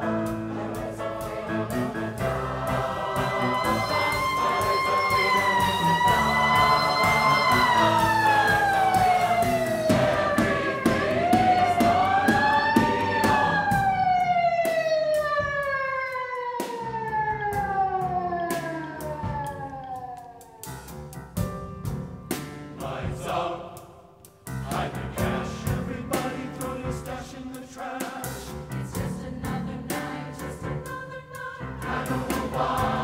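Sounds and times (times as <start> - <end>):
sustained low chords: 2.3 - 14.6
siren-like wailing tone: 2.8 - 20.8.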